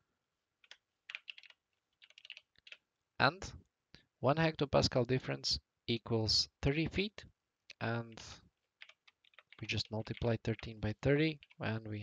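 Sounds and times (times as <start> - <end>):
typing on computer keyboard: 0.6 - 2.8, 8.7 - 10.3, 11.4 - 11.6.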